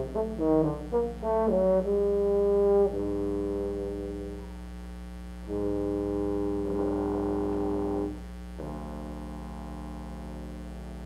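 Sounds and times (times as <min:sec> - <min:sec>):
wind band brass chords: 0:00.0 - 0:04.5, 0:05.5 - 0:09.3
low mains hum: 0:00.0 - 0:11.0.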